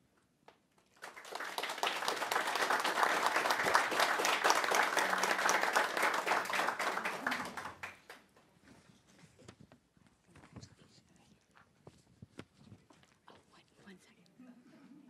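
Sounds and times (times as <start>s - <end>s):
small group applauding: 0.8s - 8.4s.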